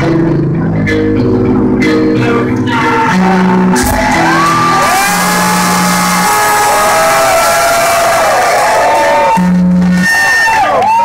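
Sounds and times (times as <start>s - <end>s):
heavy metal band playing live: 0.0s - 10.7s
low bass notes: 0.0s - 11.0s
crowd whooping and shouting: 2.7s - 11.0s.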